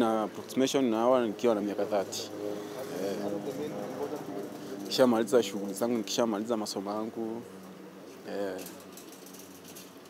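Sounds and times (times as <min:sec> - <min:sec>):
faint outdoor background: 0:00.0 - 0:10.0.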